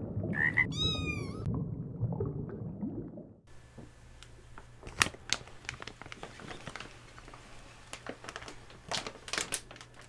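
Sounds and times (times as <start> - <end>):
cat meow: 0.7 - 1.5.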